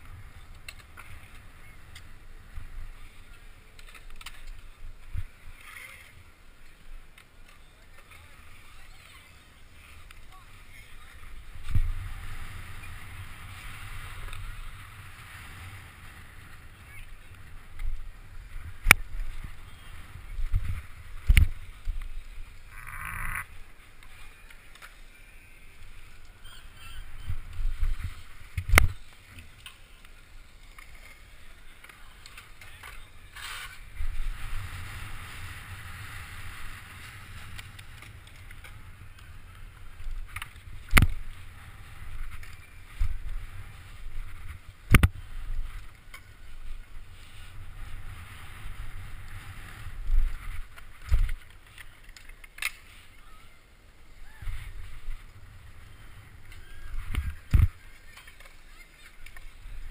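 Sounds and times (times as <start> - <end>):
wheels rolling over concrete: 0.0 - 59.9.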